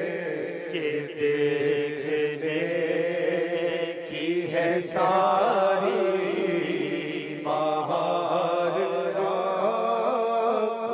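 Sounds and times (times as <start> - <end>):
man singing into a microphone: 0.0 - 10.9.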